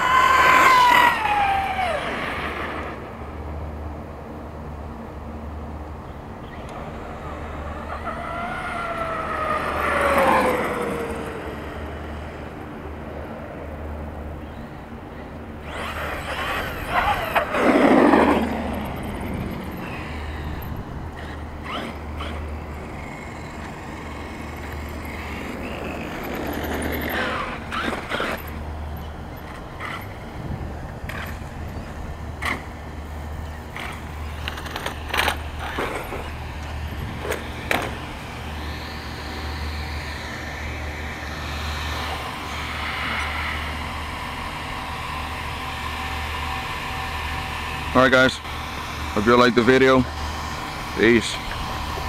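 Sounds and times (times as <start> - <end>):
electric motor whine: 0.0 - 3.4, 13.7 - 52.0
tyres on asphalt: 0.0 - 52.0.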